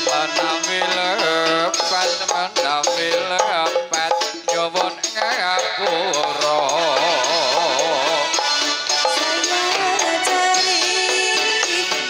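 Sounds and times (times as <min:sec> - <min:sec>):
drum percussion: 0:00.0 - 0:12.0
sharp ticks on the beat: 0:00.0 - 0:12.0.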